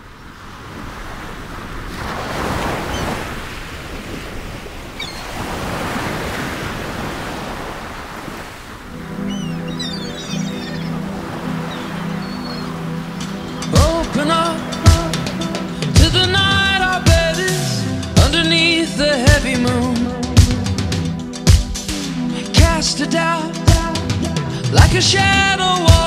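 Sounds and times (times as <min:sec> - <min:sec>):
ocean waves breaking: 0:00.0 - 0:26.0.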